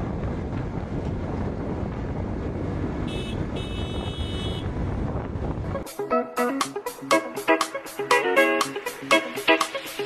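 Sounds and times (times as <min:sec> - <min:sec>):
motorcycle engine and road noise: 0:00.0 - 0:05.9
wind rushing over microphone: 0:00.0 - 0:05.9.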